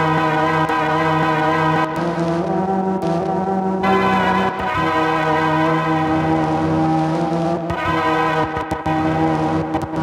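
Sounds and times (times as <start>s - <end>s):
sustained drone with overtones: 0.0s - 10.0s.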